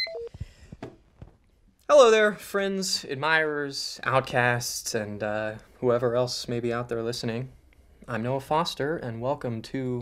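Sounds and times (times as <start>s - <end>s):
high electronic beep: 0.0s - 0.3s
soft knocks and rustles: 0.6s - 1.5s.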